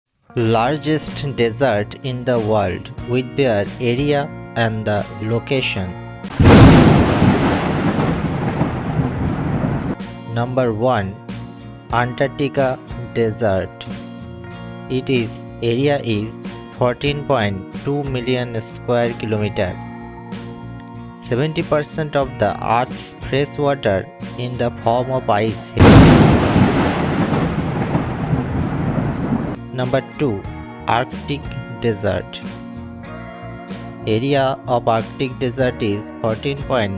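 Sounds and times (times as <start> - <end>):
light guitar music: 0.2 - 36.9
narrator speaking: 0.4 - 6.0, 10.3 - 11.2, 11.9 - 13.9, 14.9 - 19.8, 21.2 - 25.8, 29.7 - 32.5, 34.0 - 36.9
thunder crack and rumble: 6.4 - 10.0, 25.8 - 29.6.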